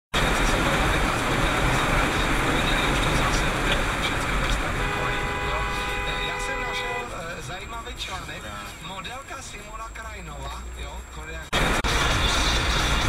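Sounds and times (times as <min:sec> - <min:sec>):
car road noise: 0:00.1 - 0:13.0
wind: 0:00.1 - 0:13.0.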